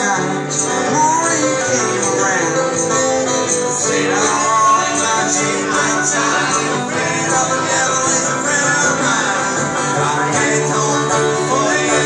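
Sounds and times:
acoustic guitar strumming: 0:00.0 - 0:12.0
banjo picking: 0:00.0 - 0:12.0.

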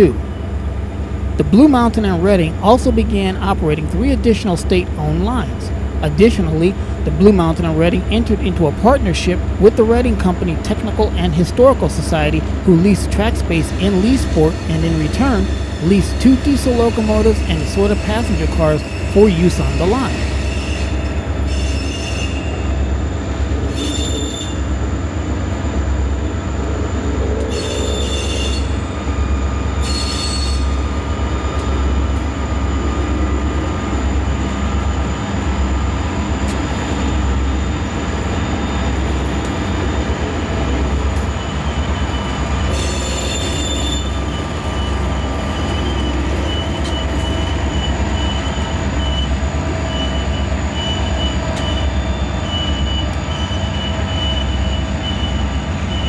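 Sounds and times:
diesel locomotives rumbling: 0:00.0 - 0:56.0
high-pitched wheel squeal: 0:16.6 - 0:22.6, 0:23.7 - 0:24.6, 0:27.5 - 0:28.8, 0:29.8 - 0:30.8, 0:41.3 - 0:56.0.

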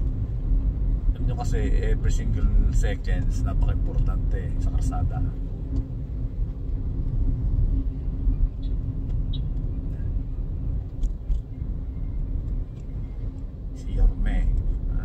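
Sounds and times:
engine and road rumble: 0:00.0 - 0:15.0.

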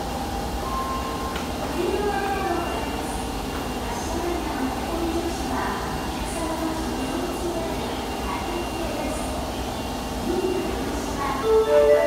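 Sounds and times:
passengers' voices: 0:00.0 - 0:12.0
stationary train humming: 0:00.0 - 0:12.0
passengers moving: 0:10.2 - 0:12.0.

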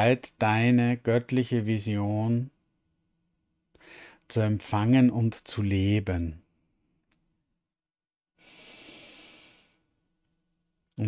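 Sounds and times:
man breathing softly: 0:03.7 - 0:04.3, 0:08.4 - 0:10.0.

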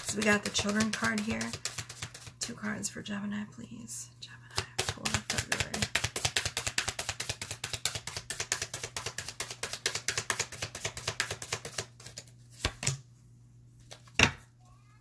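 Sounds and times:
cards being shuffled: 0:00.0 - 0:02.4, 0:04.6 - 0:13.0, 0:13.8 - 0:14.2.

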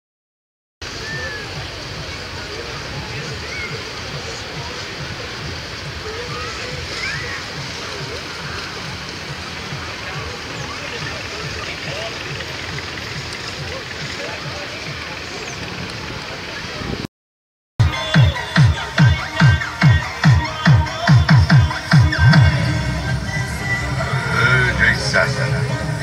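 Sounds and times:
rushing water and splashing: 0:00.8 - 0:17.1, 0:17.8 - 0:26.0
distant voices calling and chattering: 0:01.0 - 0:16.8.

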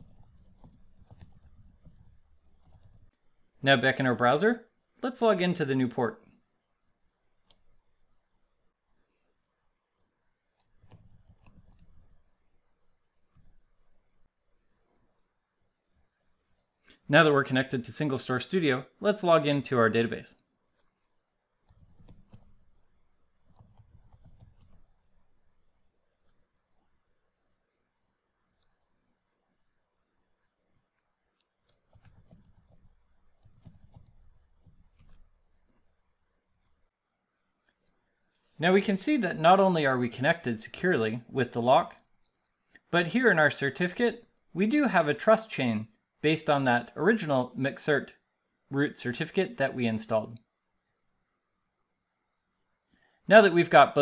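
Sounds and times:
computer keyboard clicks: 0:00.0 - 0:03.1, 0:10.6 - 0:12.2, 0:21.7 - 0:24.9, 0:31.4 - 0:35.2.

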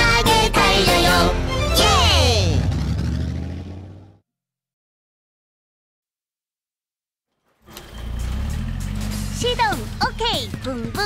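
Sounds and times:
child singing: 0:00.0 - 0:02.6
backing music: 0:00.0 - 0:02.8, 0:08.0 - 0:11.0
cartoon bus engine: 0:00.0 - 0:04.2, 0:07.5 - 0:11.0.

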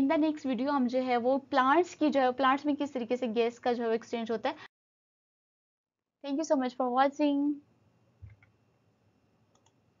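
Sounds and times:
faint clicks: 0:09.5 - 0:09.8.

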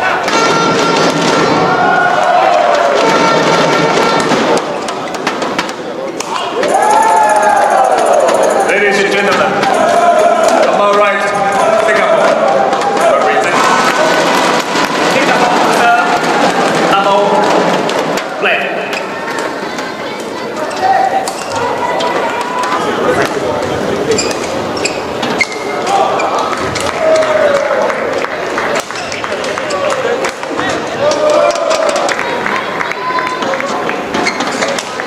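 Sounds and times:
din of crowd voices: 0:00.0 - 0:35.0
shoe squeaks and clicks on court: 0:24.1 - 0:26.4, 0:34.1 - 0:34.8.

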